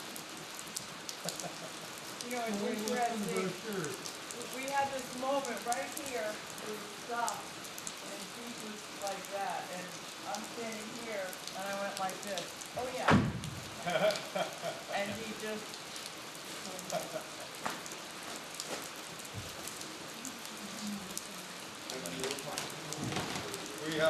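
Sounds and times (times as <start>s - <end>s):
steady rain falling: 0.0s - 24.0s
loud thump: 13.0s - 13.7s.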